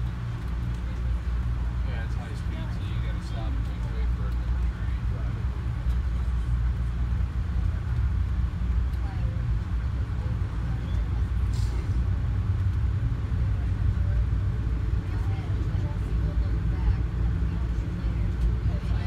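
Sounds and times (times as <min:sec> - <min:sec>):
train rumble from inside coach: 0:00.0 - 0:19.0.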